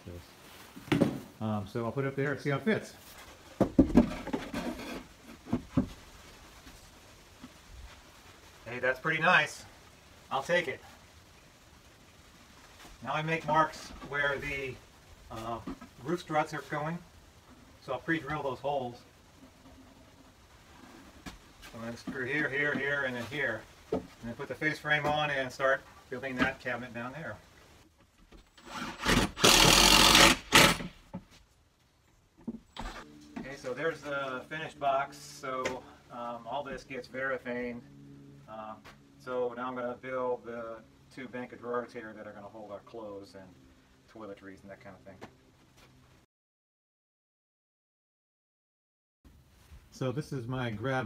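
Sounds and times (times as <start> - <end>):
wood scraping: 3.0 - 8.1, 28.0 - 31.5
screw grinding into wood: 28.5 - 31.0
cordless drill driving a screw: 28.6 - 30.9.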